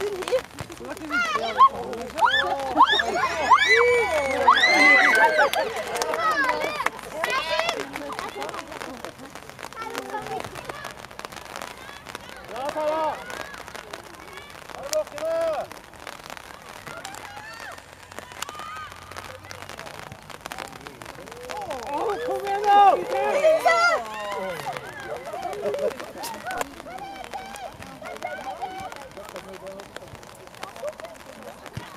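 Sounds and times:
players and spectators shouting: 0:00.0 - 0:31.9.

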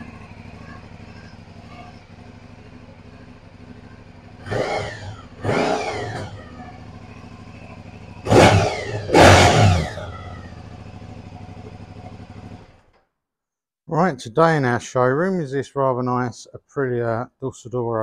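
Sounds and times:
motorcycle engine idling: 0:00.0 - 0:13.1
engine revving: 0:03.5 - 0:12.8.

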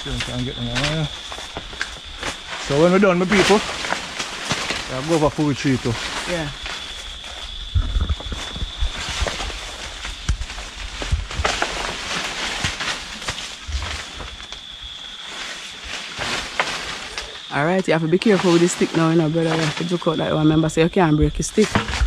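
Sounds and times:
leaves and branches rustling: 0:00.0 - 0:22.0.

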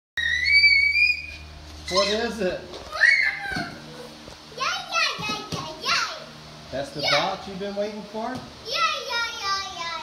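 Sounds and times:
child shouting excitedly: 0:01.9 - 0:02.3, 0:02.9 - 0:03.9, 0:04.6 - 0:06.3, 0:07.0 - 0:07.4, 0:08.6 - 0:10.0.

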